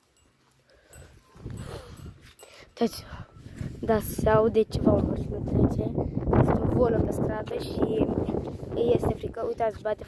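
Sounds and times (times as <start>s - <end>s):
footsteps on gravelly dirt: 0.0s - 2.5s.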